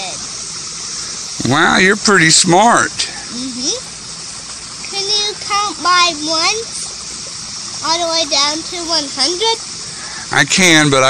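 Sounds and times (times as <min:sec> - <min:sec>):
steady background hiss: 0:00.0 - 0:11.0
man speaking: 0:01.4 - 0:03.2, 0:10.2 - 0:11.0.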